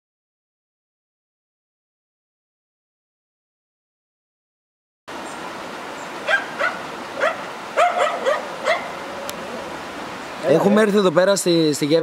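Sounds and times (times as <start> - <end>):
dog barking: 6.2 - 9.0.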